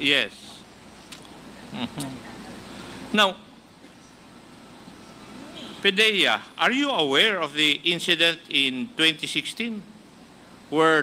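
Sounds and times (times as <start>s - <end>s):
microphone background hiss: 0.0s - 11.0s
man speaking: 3.1s - 3.4s, 5.8s - 9.9s.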